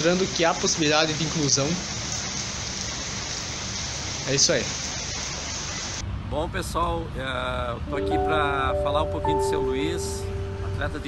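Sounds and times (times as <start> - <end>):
rain falling steadily: 0.0 - 6.0, 8.0 - 11.0.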